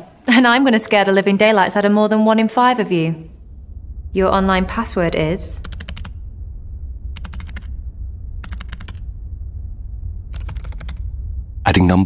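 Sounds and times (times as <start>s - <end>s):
steady low hum: 2.6s - 12.0s.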